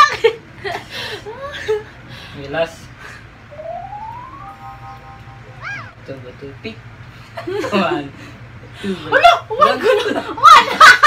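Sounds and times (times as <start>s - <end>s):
held chord of steady tones: 3.5s - 5.7s
whistle-like tone sliding upward: 3.5s - 6.0s.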